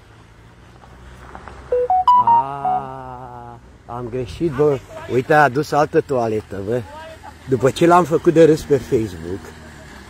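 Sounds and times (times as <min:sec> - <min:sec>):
rising electronic beeps: 0:01.7 - 0:03.0.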